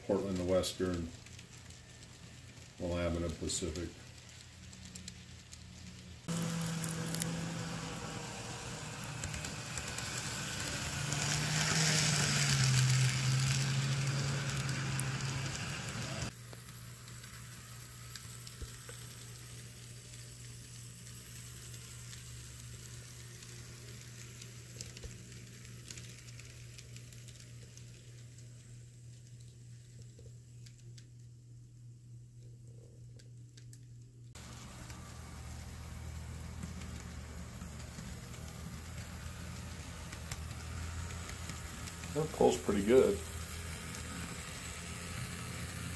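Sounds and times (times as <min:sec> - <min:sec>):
model train motor hum: 0:00.2 - 0:29.2, 0:34.4 - 0:45.9
wheels clattering on rails: 0:06.3 - 0:16.3.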